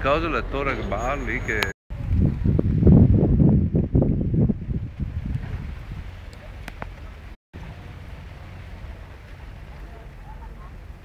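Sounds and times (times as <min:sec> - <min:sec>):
wind buffeting microphone: 0:01.9 - 0:07.4.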